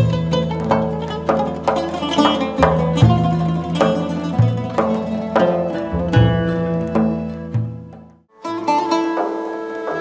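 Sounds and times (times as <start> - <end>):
plucked string ensemble: 0.0 - 10.0.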